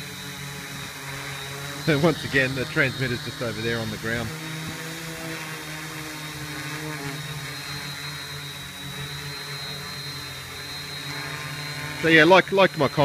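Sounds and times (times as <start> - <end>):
quadcopter propellers humming: 0.0 - 13.0.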